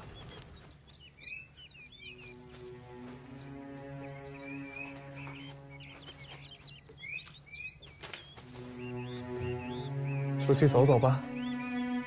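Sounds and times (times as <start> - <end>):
songbirds chirping: 0.0 - 12.0
soft background music: 1.0 - 12.0.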